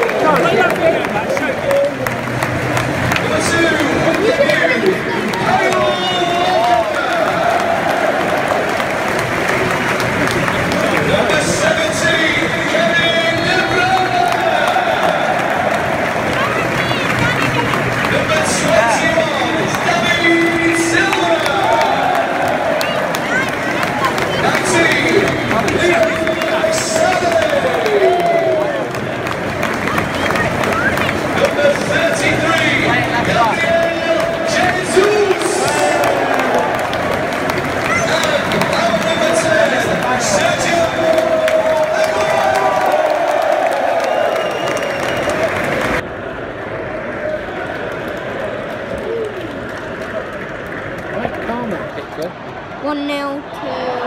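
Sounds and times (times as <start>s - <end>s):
stadium crowd cheering and singing: 0.0s - 54.0s.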